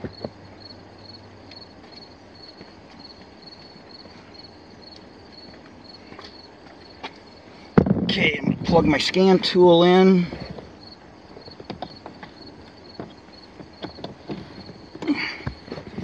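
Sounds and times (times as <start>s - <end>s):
crickets chirping: 0.0s - 16.0s
handling clicks and knocks: 11.4s - 16.0s.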